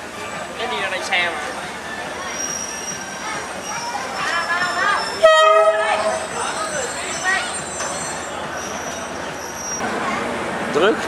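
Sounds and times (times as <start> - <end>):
crowd voices: 0.0 - 11.0
diesel locomotive horn blast: 5.0 - 6.6.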